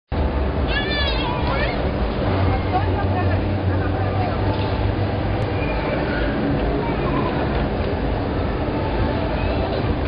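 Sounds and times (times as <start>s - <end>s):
vehicle engine rumble: 0.1s - 10.0s
people talking: 0.7s - 10.0s.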